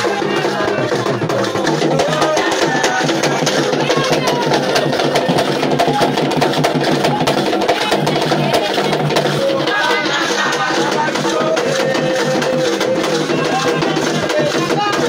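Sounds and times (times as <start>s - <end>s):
fast dense percussion: 0.0s - 15.0s
voices singing: 0.0s - 15.0s.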